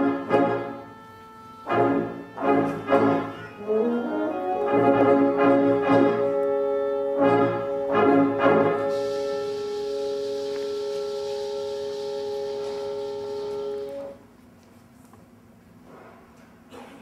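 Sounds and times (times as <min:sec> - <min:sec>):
symphonic band playing brass chords: 0:00.0 - 0:14.3
high hiss: 0:08.2 - 0:14.3.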